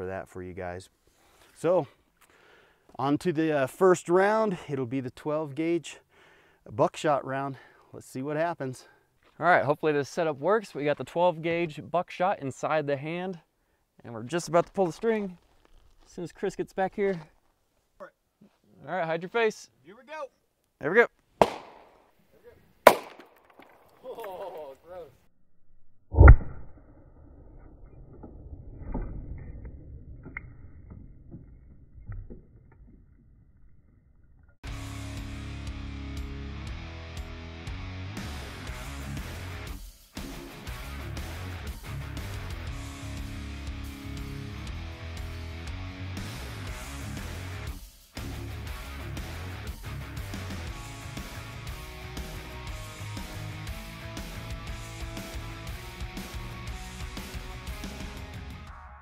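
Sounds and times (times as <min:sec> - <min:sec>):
loud gunshot bang: 0:21.4 - 0:21.9, 0:22.9 - 0:23.2
guitar background music: 0:34.6 - 0:58.7.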